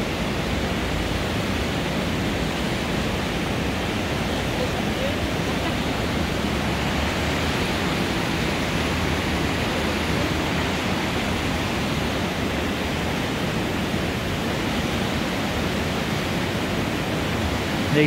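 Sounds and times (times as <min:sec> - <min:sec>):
water rushing over weir: 0:00.0 - 0:18.0.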